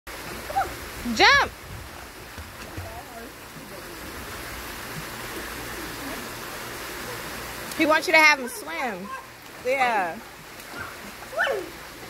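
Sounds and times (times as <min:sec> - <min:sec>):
pool water splashing: 0:00.1 - 0:12.0.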